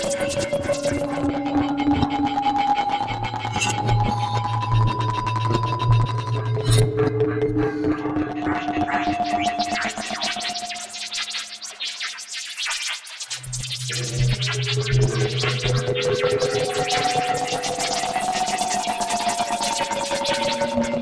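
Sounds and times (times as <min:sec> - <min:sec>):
sustained synthetic tones: 0:00.0 - 0:11.0.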